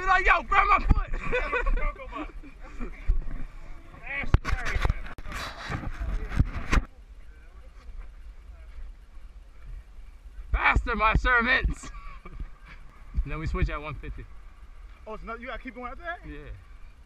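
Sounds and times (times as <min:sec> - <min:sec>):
men's voices: 0:00.0 - 0:06.4, 0:10.4 - 0:14.3
outdoor noise: 0:00.0 - 0:17.0
men laughing: 0:00.6 - 0:03.5, 0:11.6 - 0:12.9.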